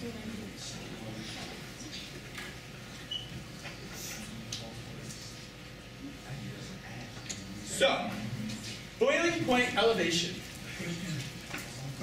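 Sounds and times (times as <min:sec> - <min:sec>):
faint indistinct voices: 0:00.0 - 0:09.0, 0:10.2 - 0:12.0.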